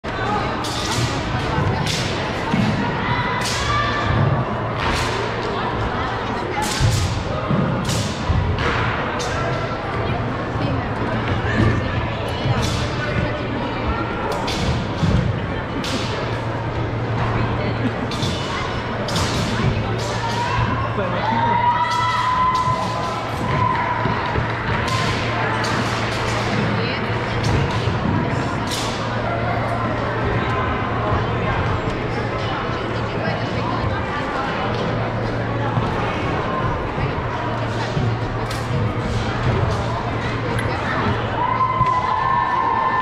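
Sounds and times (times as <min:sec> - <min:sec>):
echoing crowd chatter: 0:00.0 - 0:43.0.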